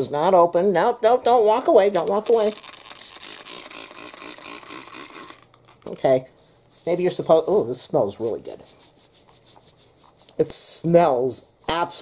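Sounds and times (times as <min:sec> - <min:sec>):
spray bottle bursts: 0:02.4 - 0:05.4.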